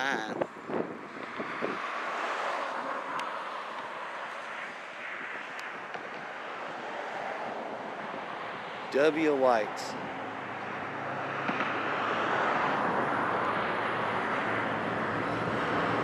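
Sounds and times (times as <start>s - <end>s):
vehicle passing: 0.0s - 16.0s.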